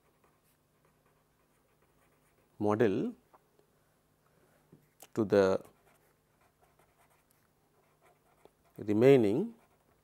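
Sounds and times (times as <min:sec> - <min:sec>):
pen scratching on paper: 0:00.0 - 0:02.5, 0:05.6 - 0:10.0
man speaking: 0:08.8 - 0:09.6.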